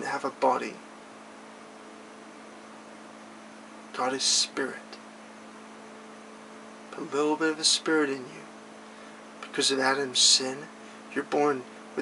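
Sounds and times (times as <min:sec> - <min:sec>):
faint hiss: 0:00.0 - 0:12.0
low electrical hum: 0:00.0 - 0:12.0.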